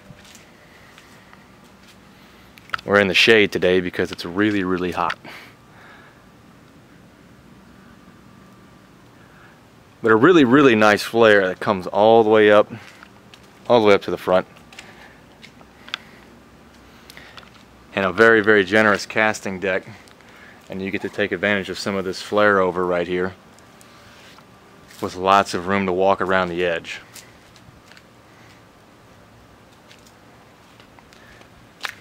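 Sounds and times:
faint steady background hiss: 0.0s - 32.0s
low steady background noise: 0.0s - 32.0s
light scattered ticks: 0.2s - 3.1s, 12.7s - 21.6s, 23.5s - 25.2s, 26.3s - 32.0s.

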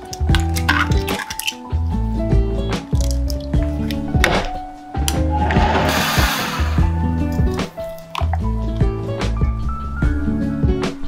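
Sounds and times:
background music with steady beat: 0.0s - 11.0s
blender running: 5.8s - 6.8s.

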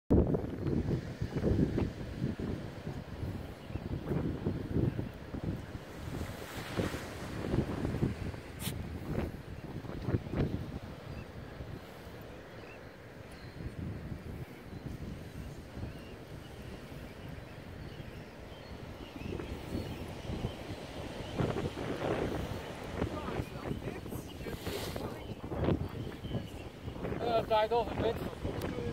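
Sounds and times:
wind buffeting microphone: 0.1s - 28.9s.

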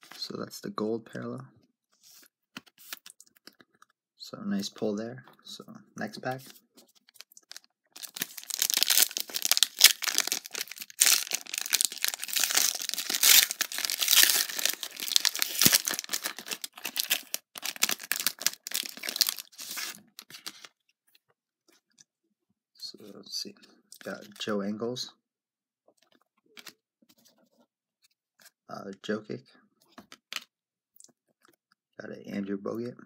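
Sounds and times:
plastic wrapper tearing and crinkling: 7.0s - 20.7s.

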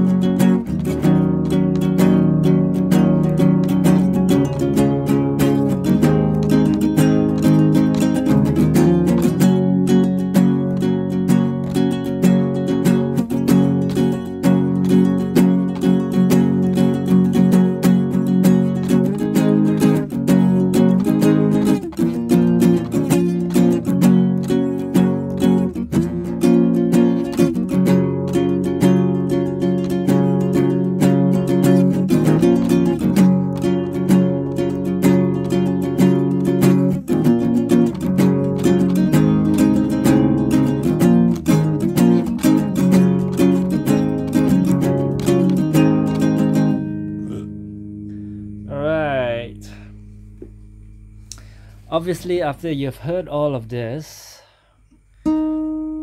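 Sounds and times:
acoustic guitar fingerpicking: 0.0s - 52.8s, 54.5s - 56.0s.

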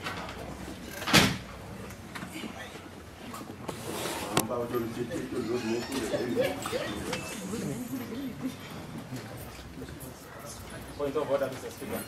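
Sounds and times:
faint murmur of a large room: 0.0s - 12.0s.

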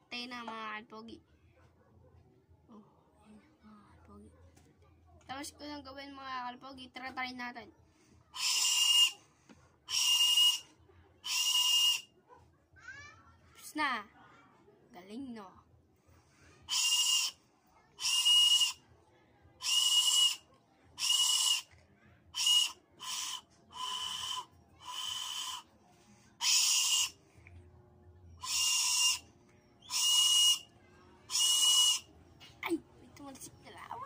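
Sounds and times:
shrill whistle blasts: 8.4s - 10.7s, 11.3s - 12.1s, 16.7s - 17.4s, 18.0s - 18.8s, 19.6s - 21.7s, 22.4s - 25.7s, 26.4s - 27.2s, 28.4s - 32.1s.

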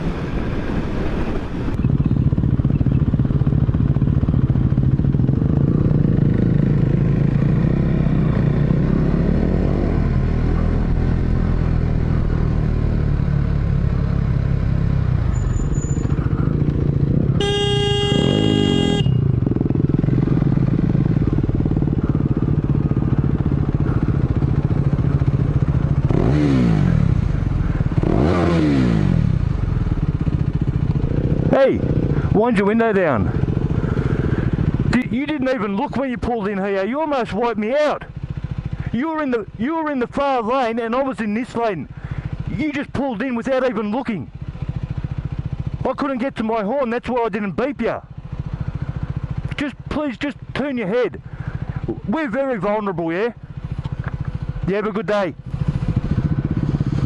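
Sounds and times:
wind and road noise: 0.0s - 39.0s, 39.6s - 45.9s, 47.5s - 57.0s
motorcycle engine running: 0.0s - 57.0s
vehicle horn: 17.3s - 19.4s.

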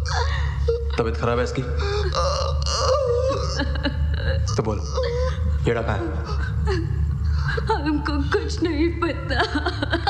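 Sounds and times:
steady low hum: 0.0s - 10.0s
person moaning in pain: 1.8s - 6.9s.

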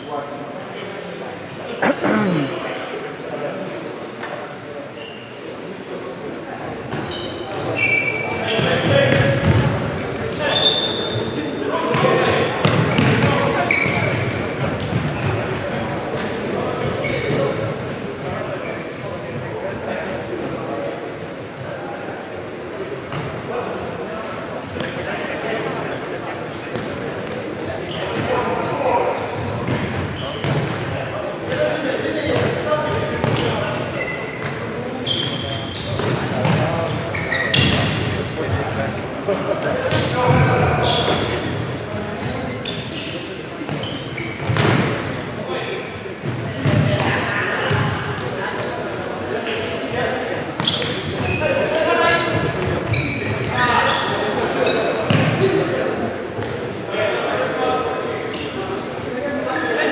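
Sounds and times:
players calling out: 1.8s - 2.7s.

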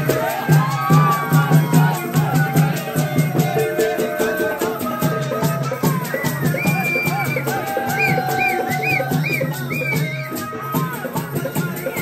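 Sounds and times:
dhol drum beat: 0.0s - 12.0s.

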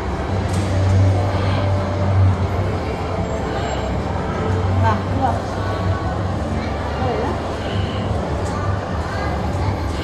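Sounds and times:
background noise haze: 0.0s - 10.0s.

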